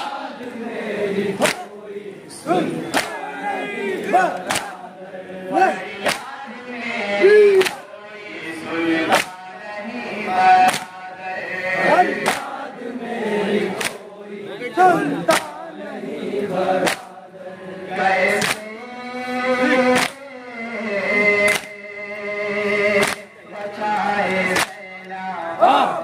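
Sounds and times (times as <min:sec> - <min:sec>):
crowd beating chests: 0:00.0 - 0:17.4, 0:18.0 - 0:20.5, 0:21.1 - 0:26.0
men chanting in chorus: 0:00.0 - 0:26.0.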